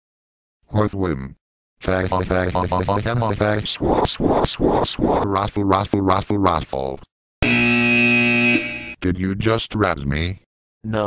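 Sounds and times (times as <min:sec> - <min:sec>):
buzzer steady tone: 0:07.4 - 0:09.0.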